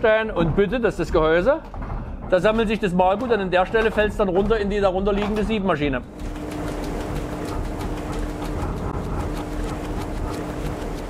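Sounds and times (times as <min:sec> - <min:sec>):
mill machinery rumbling: 0:00.0 - 0:11.0
rapid even clatter: 0:00.4 - 0:11.0.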